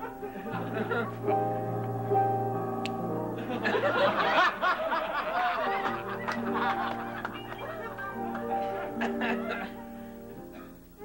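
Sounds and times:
people laughing: 0.0 - 1.6, 3.4 - 10.1
background music with held notes: 0.0 - 11.0.

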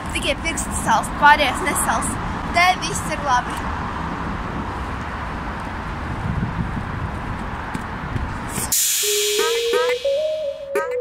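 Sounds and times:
road traffic rumble: 0.0 - 10.4
electronic background music: 8.8 - 11.0.

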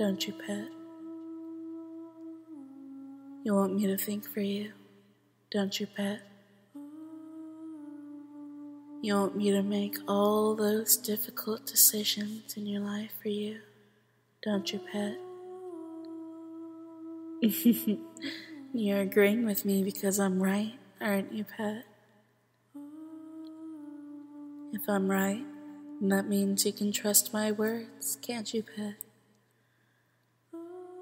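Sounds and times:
person humming: 0.0 - 4.7, 6.8 - 13.6, 14.4 - 20.6, 22.8 - 28.4, 30.6 - 31.0.

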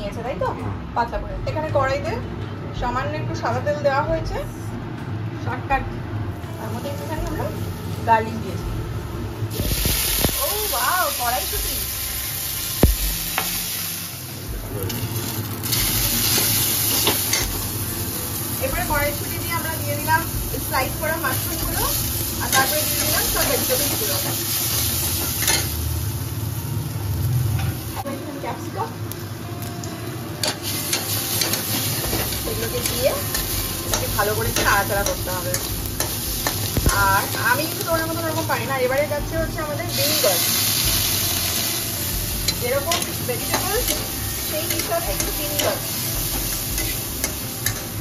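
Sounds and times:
vegetables sizzling in a pan: 6.5 - 48.0.

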